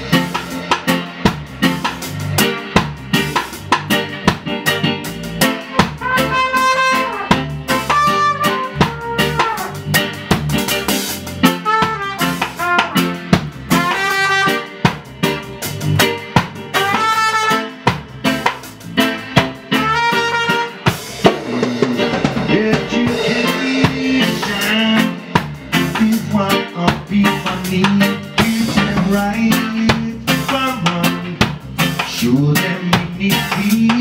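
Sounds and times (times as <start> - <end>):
drum kit with snare hits: 0.0 - 34.0
live band playing: 0.0 - 34.0
trumpet melody: 5.6 - 10.1, 11.4 - 15.0, 16.6 - 18.0, 19.6 - 21.2.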